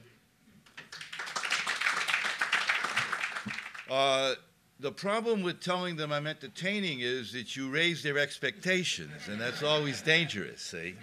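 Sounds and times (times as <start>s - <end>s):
audience applauding: 0.8s - 3.9s.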